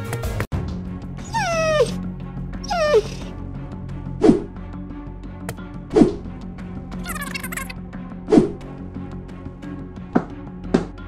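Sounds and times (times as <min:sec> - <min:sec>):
background music: 0:00.0 - 0:11.0
small dog yelping: 0:01.2 - 0:02.0, 0:02.6 - 0:03.3.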